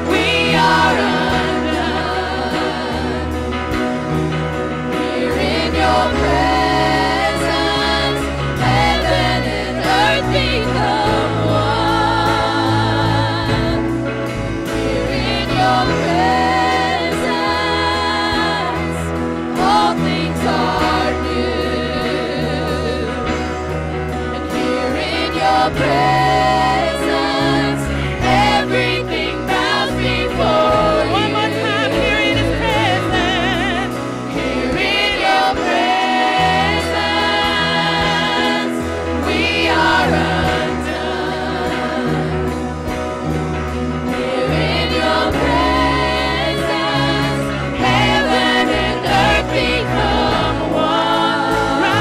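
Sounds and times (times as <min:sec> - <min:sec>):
women singing into microphones: 0:00.0 - 0:04.0, 0:04.9 - 0:23.6, 0:24.2 - 0:43.0, 0:44.0 - 0:52.0
choir singing: 0:00.0 - 0:52.0
electric guitar: 0:00.0 - 0:52.0
low bass notes: 0:00.0 - 0:52.0
low musical accompaniment: 0:00.0 - 0:52.0.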